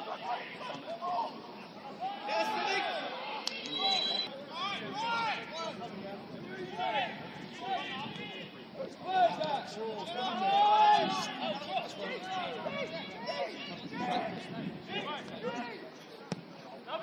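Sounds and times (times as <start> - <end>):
men calling and shouting: 0.0 - 17.0.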